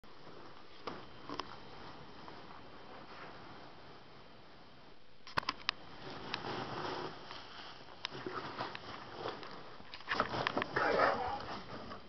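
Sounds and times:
foam packing peanuts rustling: 0:05.8 - 0:12.0.

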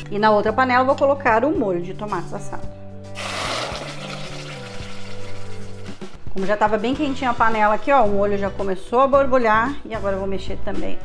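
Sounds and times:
sauce sizzling in a hot pan: 0:03.2 - 0:05.8.

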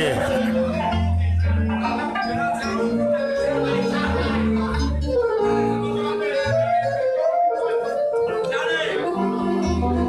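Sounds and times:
double bass: 0:00.0 - 0:08.1, 0:09.0 - 0:10.0
accordion: 0:00.0 - 0:10.0.

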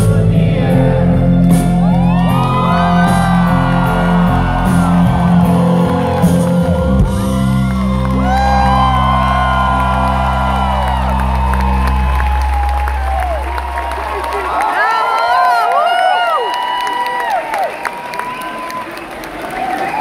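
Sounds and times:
low bass notes: 0:00.0 - 0:14.8
crowd whooping and cheering: 0:01.4 - 0:20.0.

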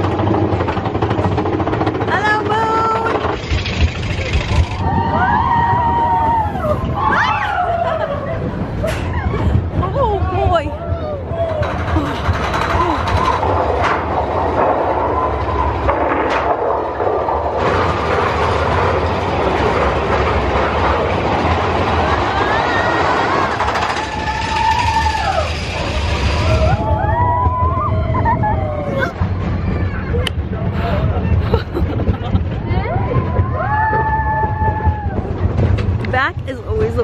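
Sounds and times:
roller coaster rumble and clatter: 0:00.0 - 0:37.0.

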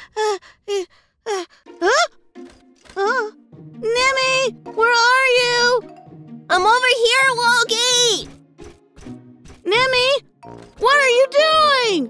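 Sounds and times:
soft background music: 0:01.5 - 0:12.0.

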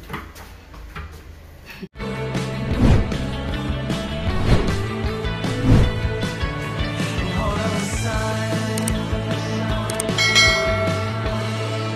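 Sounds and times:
background music: 0:02.0 - 0:11.9
bright bell ding: 0:10.2 - 0:11.5.

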